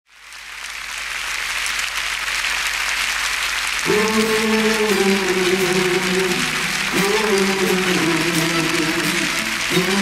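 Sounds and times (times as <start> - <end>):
large audience applauding: 0.1 - 10.0
man singing: 3.8 - 10.0.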